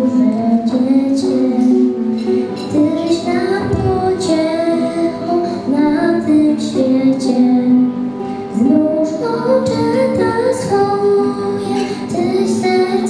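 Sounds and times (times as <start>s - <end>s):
acoustic guitar: 0.0s - 13.0s
girl singing into a microphone: 0.0s - 13.0s.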